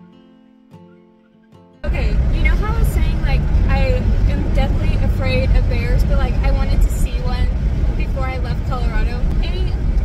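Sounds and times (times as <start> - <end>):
woman talking: 1.8 - 9.8
road and wind rumble: 1.8 - 10.0.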